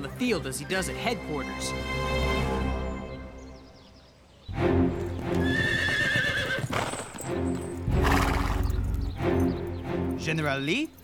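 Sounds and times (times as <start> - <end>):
background music: 0.0 - 11.0
hoofbeats: 4.8 - 11.0
horse whinnying: 5.3 - 7.2, 8.0 - 8.8.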